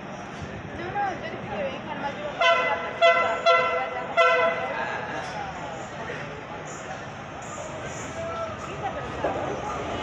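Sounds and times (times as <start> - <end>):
train horn blasts: 2.4 - 4.6.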